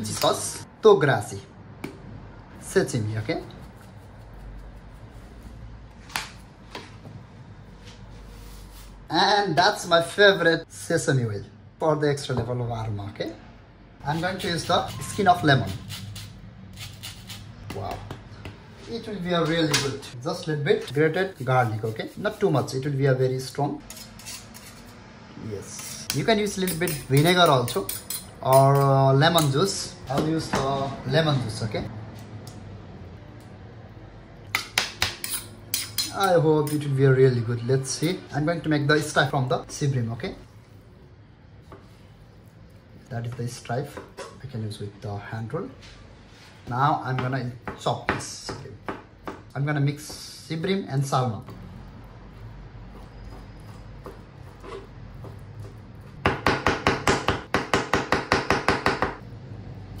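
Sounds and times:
metal spoon scraping steel bowl: 0:14.1 - 0:17.5, 0:23.8 - 0:25.1, 0:35.2 - 0:36.9, 0:54.4 - 0:55.0.

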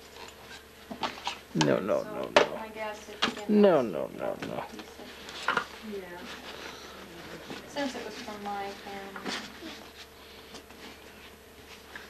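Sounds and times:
faint buzzing hum: 0:00.0 - 0:12.0.

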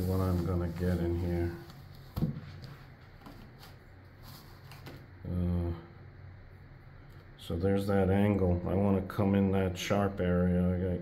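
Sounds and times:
paintbrush dabbing canvas: 0:00.0 - 0:01.7
low steady hum: 0:00.0 - 0:11.0.

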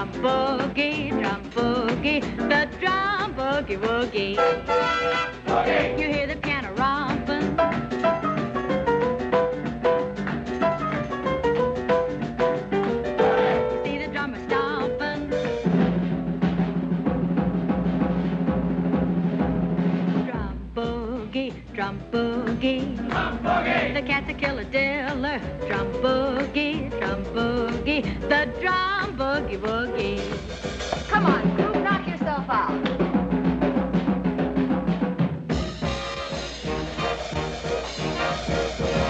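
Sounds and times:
drum kit pattern: 0:00.0 - 0:39.0
swing band with brass: 0:00.0 - 0:39.0.

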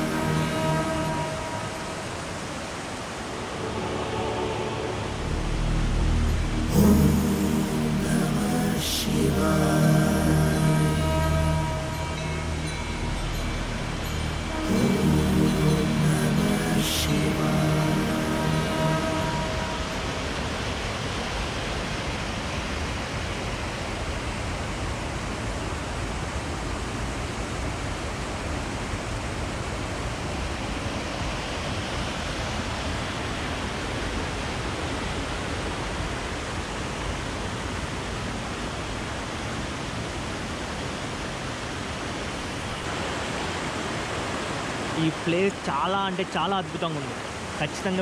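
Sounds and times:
stream rushing over rocks: 0:00.0 - 0:48.0.

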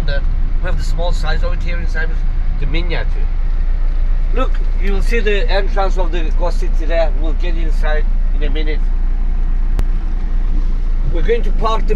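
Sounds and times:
vehicle engine and road noise: 0:00.0 - 0:11.9.

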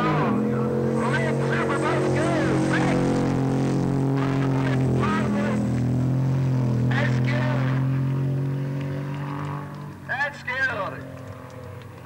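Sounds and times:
voices: 0:00.0 - 0:03.2, 0:04.2 - 0:05.7, 0:06.9 - 0:07.8, 0:10.1 - 0:11.1
truck engine passing at speed: 0:00.0 - 0:12.0.

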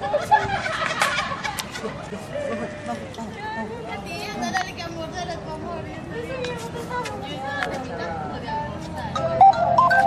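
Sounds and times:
people talking: 0:01.8 - 0:10.0
electronic melody of held notes: 0:09.1 - 0:10.0.

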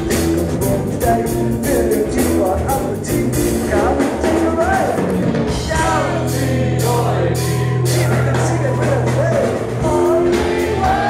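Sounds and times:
person singing: 0:00.0 - 0:11.0
rock band playing: 0:00.0 - 0:11.0.

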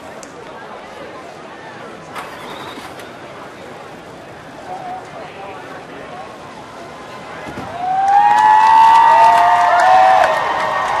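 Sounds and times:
crowd cheering: 0:07.6 - 0:11.0.

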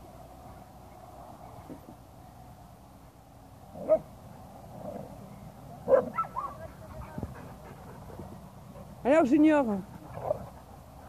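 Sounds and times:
dog barks: 0:05.8 - 0:06.6
dog yips: 0:05.9 - 0:06.6.

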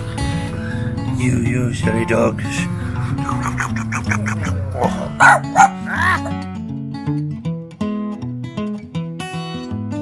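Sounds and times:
acoustic guitar music: 0:00.0 - 0:10.0
dog barking: 0:04.7 - 0:06.4.

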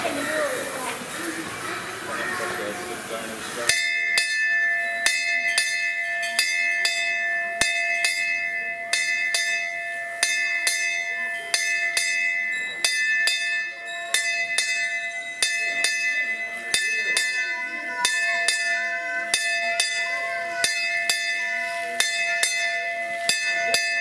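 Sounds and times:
bell ringing: 0:03.7 - 0:24.0.

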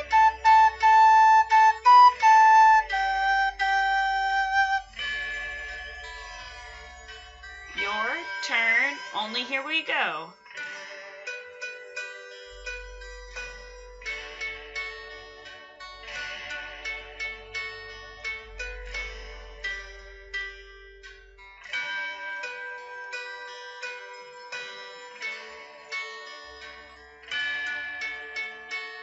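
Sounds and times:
plucked string notes: 0:00.0 - 0:04.9
held melody notes: 0:00.0 - 0:05.0.

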